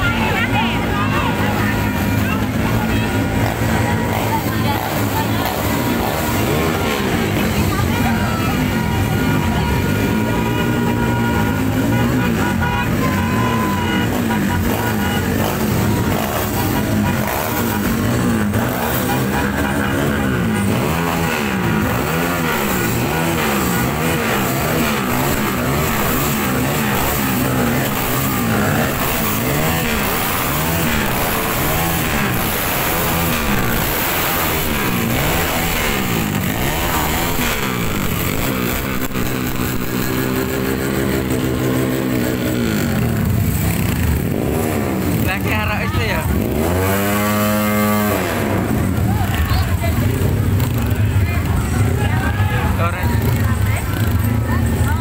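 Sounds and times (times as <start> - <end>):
motorcycle engines revving: 0.0 - 55.0.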